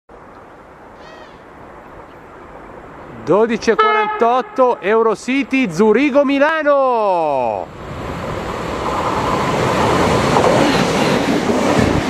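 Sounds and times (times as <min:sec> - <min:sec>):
outdoor background noise: 0:00.1 - 0:12.0.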